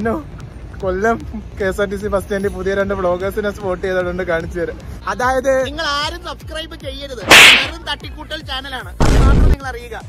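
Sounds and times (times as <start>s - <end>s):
music: 0.0s - 10.0s
sharp hissy swish: 7.2s - 7.8s.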